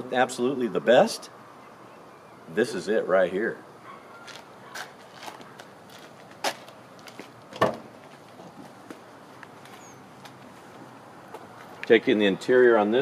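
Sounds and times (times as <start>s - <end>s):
footsteps on pavement: 3.9s - 12.0s.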